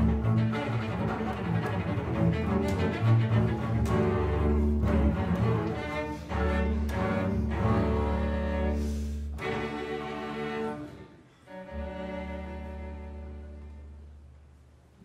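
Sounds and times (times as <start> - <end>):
cello bowing sustained notes: 0.0 - 14.3
double bass bowing: 0.0 - 14.4.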